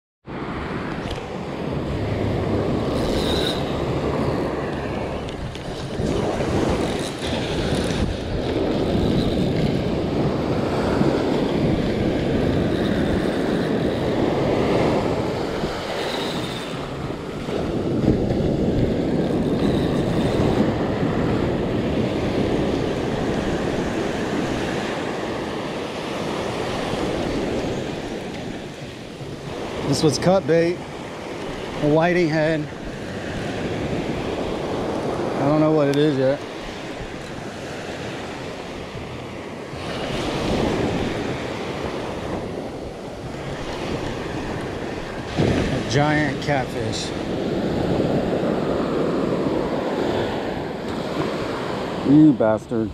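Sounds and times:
ocean surf breaking: 0.3 - 52.9.

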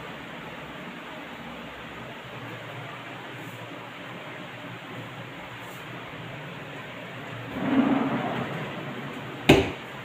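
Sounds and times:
cabinet rolling rumble: 7.2 - 10.0.

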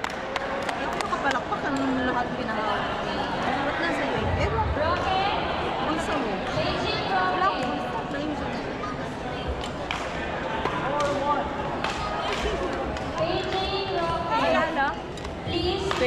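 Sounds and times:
chatter of voices: 0.5 - 16.0.

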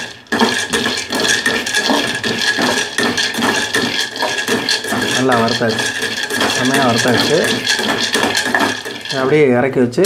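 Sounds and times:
spoon stirring nuts in metal pan: 0.0 - 9.6.

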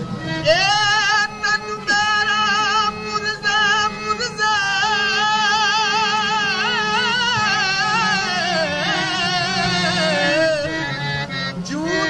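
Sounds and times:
high voice singing with vibrato: 0.2 - 12.0.

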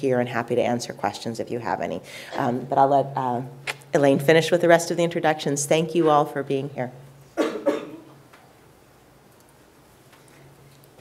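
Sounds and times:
person coughing: 7.4 - 8.2.

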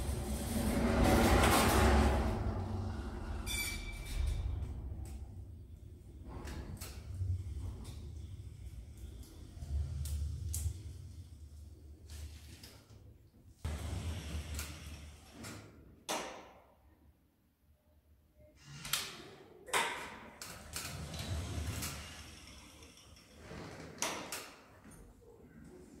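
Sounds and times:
sliding lift door: 0.0 - 12.6, 13.6 - 15.8, 20.4 - 24.4.

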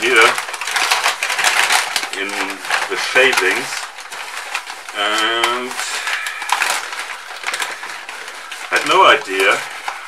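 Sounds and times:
paper bag crinkling: 0.0 - 10.0
wood shavings rustling: 0.0 - 10.0.

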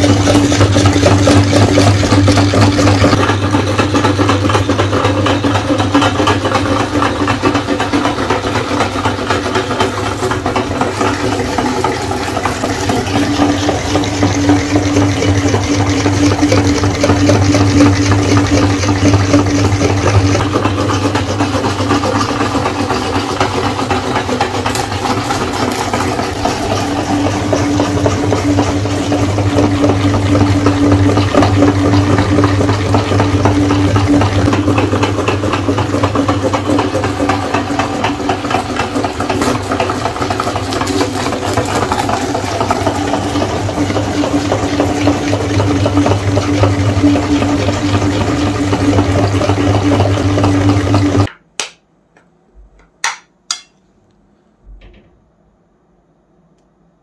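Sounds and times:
machine hum: 0.0 - 57.0.

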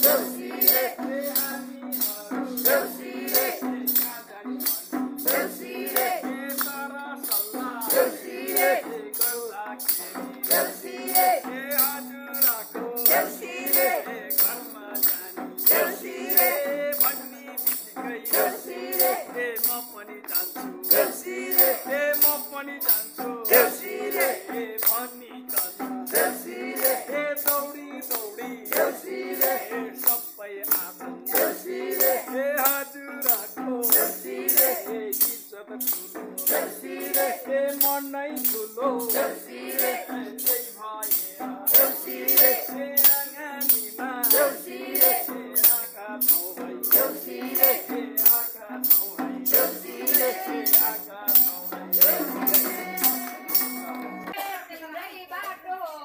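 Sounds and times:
tambourine jingles: 0.0 - 54.3
group singing: 0.0 - 54.5.

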